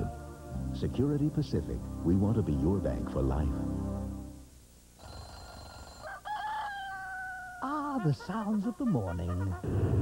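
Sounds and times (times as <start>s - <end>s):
rooster crowing: 5.4s - 8.2s.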